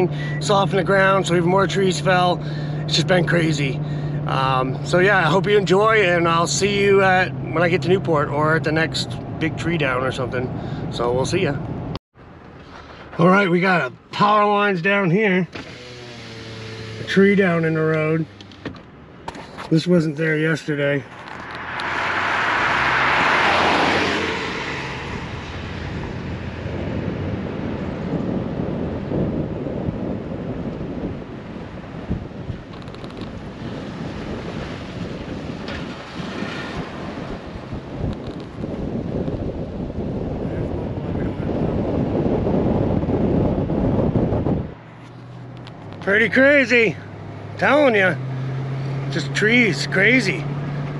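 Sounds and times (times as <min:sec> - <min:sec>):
road noise: 0:00.0 - 0:50.9
wind rushing over microphone: 0:20.8 - 0:50.9.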